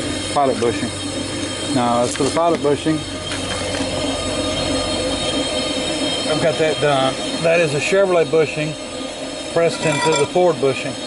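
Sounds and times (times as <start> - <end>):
high-pitched whine: 9.5 - 10.6.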